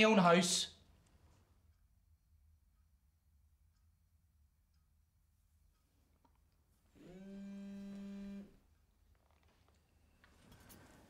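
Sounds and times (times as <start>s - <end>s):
phone vibrating on wooden table: 7.2s - 8.6s.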